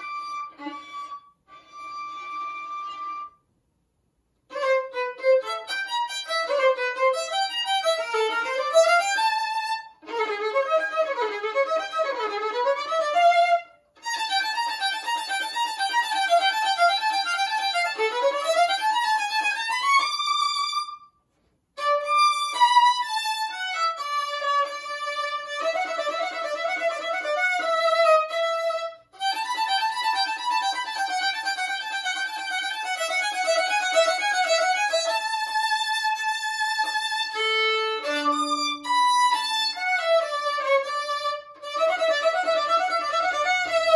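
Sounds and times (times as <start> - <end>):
solo violin: 0.0 - 3.5, 4.4 - 43.9.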